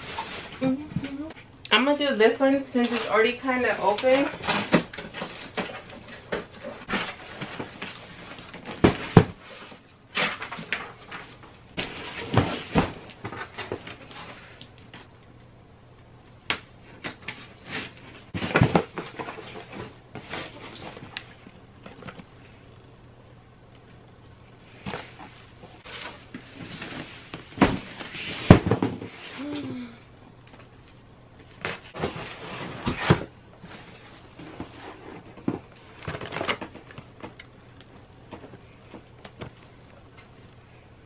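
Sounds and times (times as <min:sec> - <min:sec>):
cardboard rustling and scraping: 0:02.7 - 0:14.6, 0:16.9 - 0:22.6, 0:24.7 - 0:29.6, 0:31.5 - 0:37.5.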